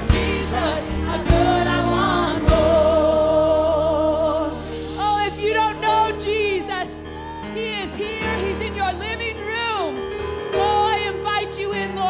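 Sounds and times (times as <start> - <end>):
band accompaniment: 0.0 - 6.8
woman singing gospel song: 0.0 - 9.9.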